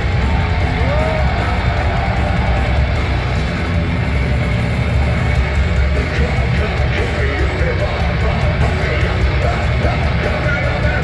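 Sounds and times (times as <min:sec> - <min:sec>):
distorted electric guitars: 0:00.0 - 0:11.0
drums: 0:00.0 - 0:11.0
heavy bass: 0:00.0 - 0:11.0.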